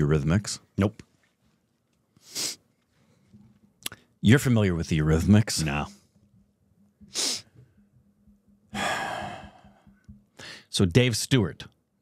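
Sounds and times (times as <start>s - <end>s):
long sigh: 8.7s - 10.7s
sharp exhale: 8.8s - 9.8s, 10.4s - 10.7s.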